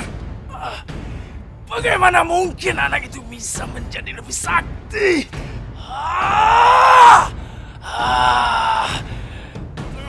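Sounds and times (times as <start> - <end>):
man's strained cries of effort: 5.8 - 9.1.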